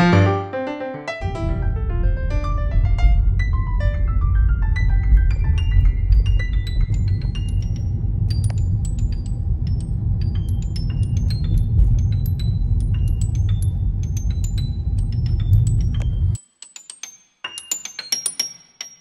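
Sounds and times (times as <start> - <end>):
car interior rumble: 1.2 - 16.4
music with high plinking notes: 2.5 - 19.0.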